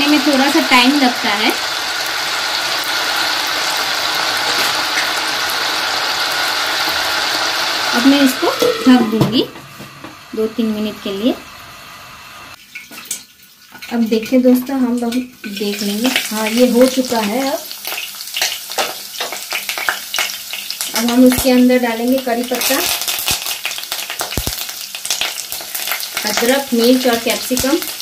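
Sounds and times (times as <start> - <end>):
potatoes sizzling in hot oil: 0.0 - 12.9, 13.5 - 28.0.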